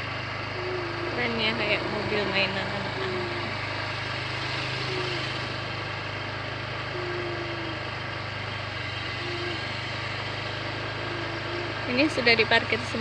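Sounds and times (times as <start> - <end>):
engine idling: 0.0 - 13.0.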